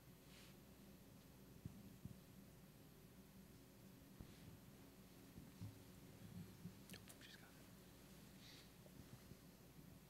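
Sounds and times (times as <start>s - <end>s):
low room hum: 0.0s - 10.0s
faint whisper: 6.8s - 8.8s.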